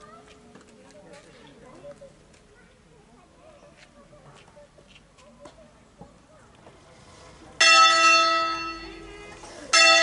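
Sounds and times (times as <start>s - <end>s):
faint voices: 0.0s - 10.0s
church bell hum: 7.6s - 10.0s.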